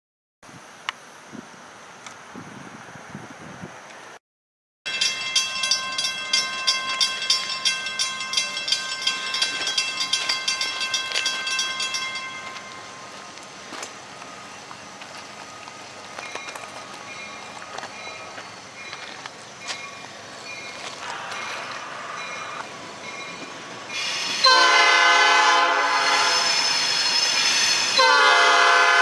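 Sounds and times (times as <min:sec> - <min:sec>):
crossing bell ringing rapidly: 0:04.9 - 0:13.2, 0:15.5 - 0:28.7
distant train: 0:04.9 - 0:29.0.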